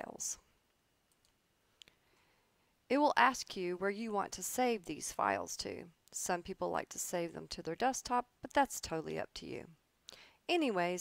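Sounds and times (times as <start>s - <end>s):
woman's voice: 0.0s - 0.5s, 2.9s - 9.8s, 10.5s - 11.0s.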